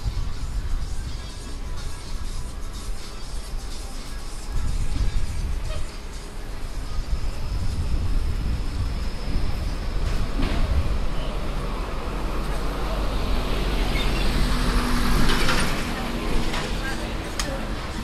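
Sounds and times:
street traffic: 0.0s - 18.0s
people talking: 12.4s - 18.0s.

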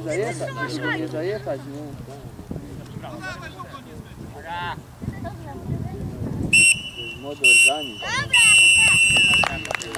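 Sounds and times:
voices of players and spectators: 0.0s - 9.9s
referee's whistle blast: 6.6s - 9.8s.

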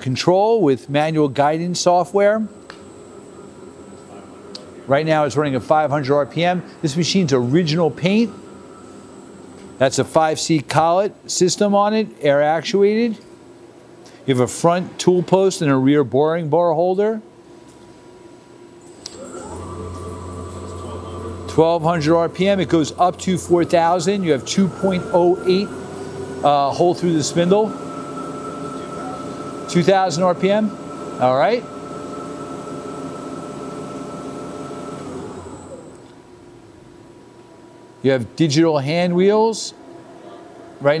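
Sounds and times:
lathe spindle whine: 1.4s - 11.0s, 18.8s - 36.2s.

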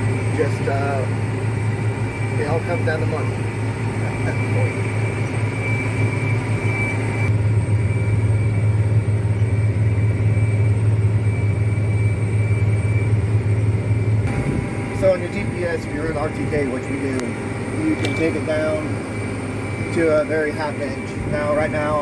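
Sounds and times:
thin steady high whine: 0.0s - 22.0s
tractor engine drone: 0.0s - 22.0s.

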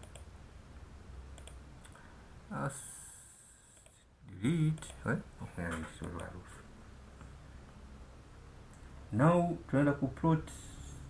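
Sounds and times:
computer mouse clicks: 0.0s - 0.3s, 1.3s - 2.0s, 3.8s - 4.0s, 4.7s - 5.0s, 5.7s - 6.4s
low steady hum: 0.0s - 11.0s.

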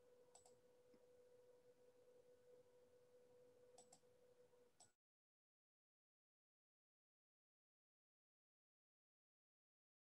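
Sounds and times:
faint steady hum: 0.0s - 5.0s
faint clicks: 0.3s - 1.0s, 3.8s - 4.0s.

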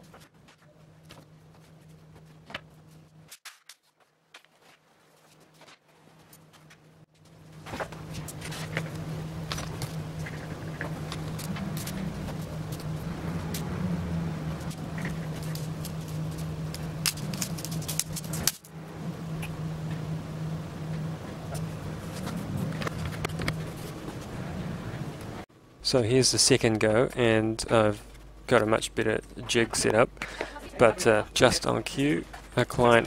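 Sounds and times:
low machine hum: 0.0s - 3.3s, 5.3s - 33.0s.

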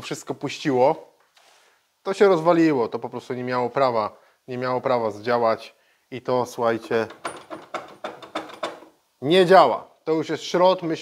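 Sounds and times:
hand crank metallic clicks: 6.8s - 8.9s.

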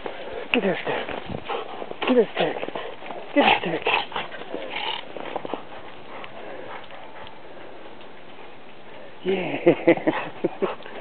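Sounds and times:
dog paws crunching in snow: 0.0s - 9.1s
steady faint hiss: 0.0s - 11.0s.

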